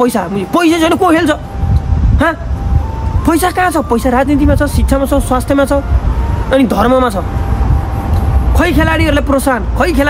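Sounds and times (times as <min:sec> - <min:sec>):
man speaking: 0:00.0 - 0:01.5, 0:03.2 - 0:07.4, 0:08.4 - 0:10.0.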